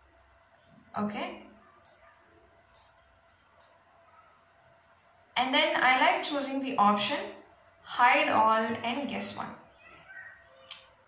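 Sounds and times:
computer mouse clicks: 1.8 - 2.1, 2.7 - 3.8, 10.6 - 11.0.

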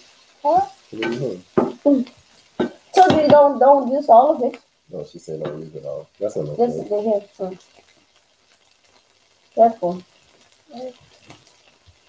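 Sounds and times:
faint frying sizzle: 0.0 - 12.0.

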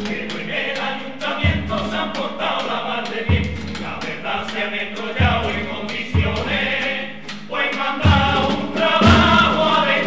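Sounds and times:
chorus singing: 0.0 - 10.0
percussion beat: 0.0 - 10.0.

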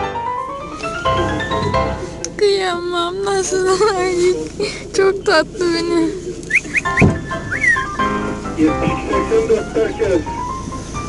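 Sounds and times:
thump: 7.0 - 7.3.

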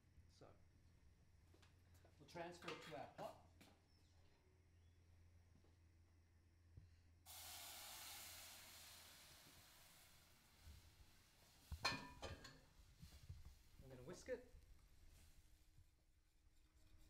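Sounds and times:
hiss at the stove: 7.3 - 13.3.

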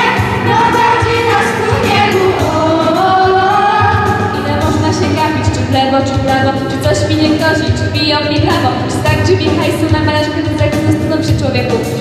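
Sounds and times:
children's choir singing: 0.0 - 4.3
instrumental accompaniment: 0.0 - 12.0.

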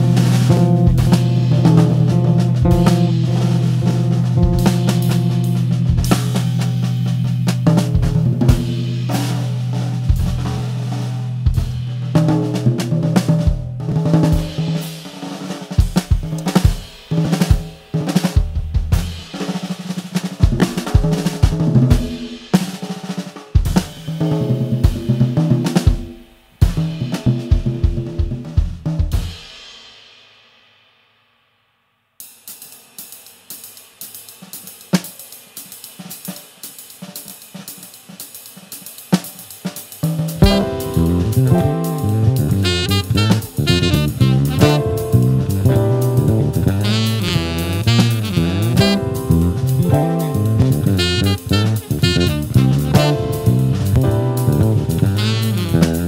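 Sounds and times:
bass groove: 0.0 - 14.8, 40.2 - 56.0
smooth jazz music: 0.0 - 15.6, 40.2 - 56.0
drum kit groove: 0.0 - 30.0, 32.2 - 56.0.

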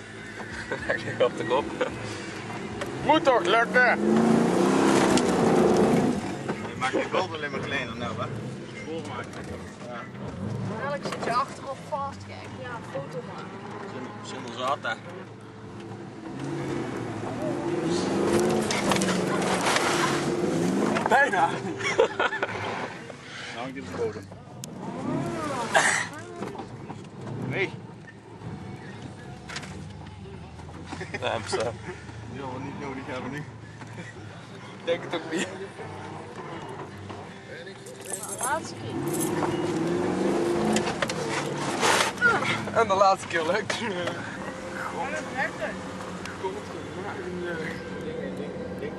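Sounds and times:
engine revving under load: 1.4 - 14.8, 15.5 - 30.3, 38.3 - 48.9
car engine running under load: 38.5 - 48.9.

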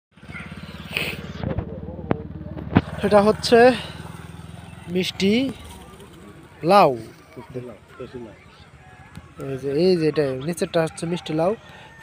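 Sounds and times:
small engine idling: 0.2 - 8.8.

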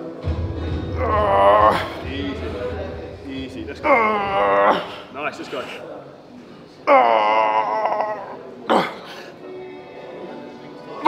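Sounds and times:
man groaning with effort: 0.9 - 2.0, 3.8 - 5.1.

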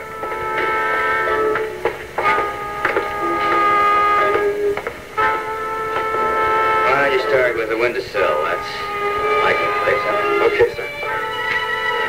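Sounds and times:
sustained background music chords: 0.0 - 12.0.

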